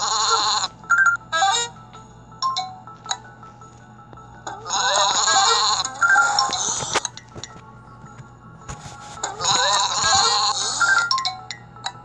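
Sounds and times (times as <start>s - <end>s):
cartoon sheep bleating: 4.6s - 5.9s, 9.4s - 10.8s.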